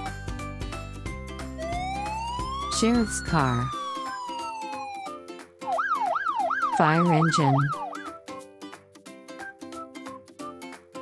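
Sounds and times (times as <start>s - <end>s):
background music: 0.0s - 11.0s
police siren slow wail: 1.6s - 8.1s
fast sweeping siren: 1.6s - 8.2s.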